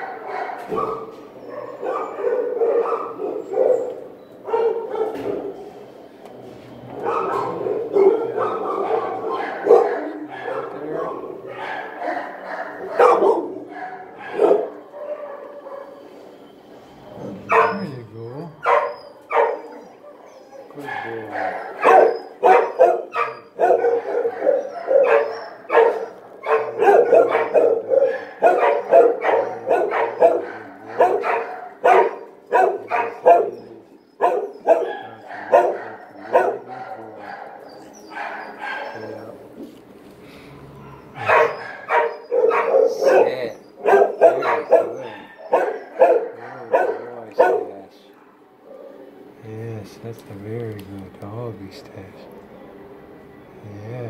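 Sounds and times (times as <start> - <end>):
dogs barking: 0.0 - 6.2, 6.8 - 16.5, 17.1 - 39.8, 40.5 - 49.4.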